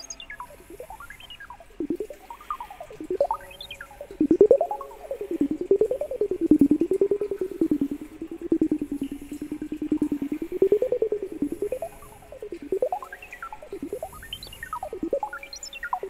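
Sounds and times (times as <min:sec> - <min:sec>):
pulsing hummed vocal loop: 0:00.0 - 0:16.0.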